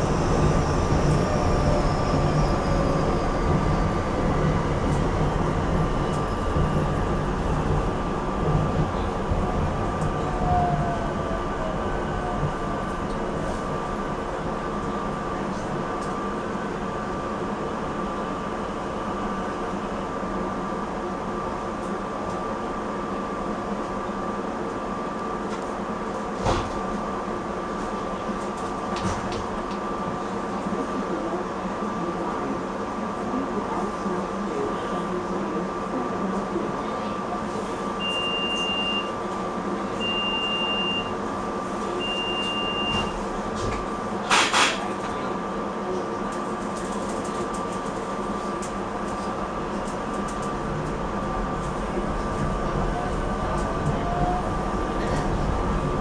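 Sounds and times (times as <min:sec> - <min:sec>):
train running hum and whine: 0:00.0 - 0:56.0
short high beeps: 0:38.0 - 0:39.1, 0:42.0 - 0:43.1.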